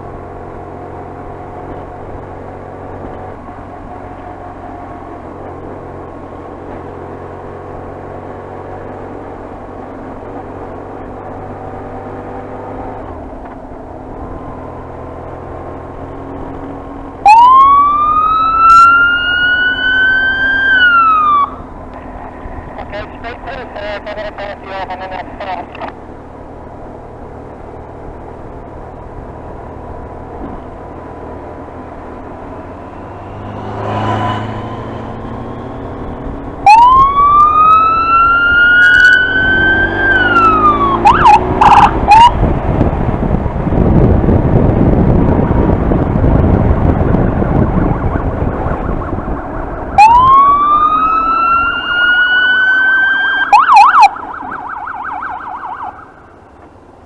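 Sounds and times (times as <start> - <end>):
electronic siren wail: 17.2 - 21.6, 36.6 - 42.4, 47.2 - 56.3
rapid pulsing siren tones: 17.2 - 21.6, 36.6 - 42.4, 46.7 - 56.4
wind noise: 40.7 - 51.5.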